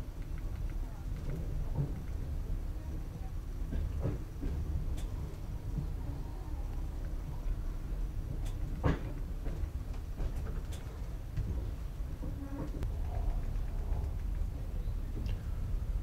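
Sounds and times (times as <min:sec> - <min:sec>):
train rumbling: 0:00.0 - 0:16.0.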